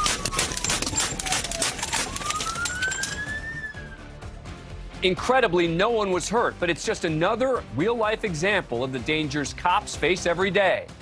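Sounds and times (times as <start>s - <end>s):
police siren wailing: 0.0s - 4.2s
background music: 0.0s - 11.0s.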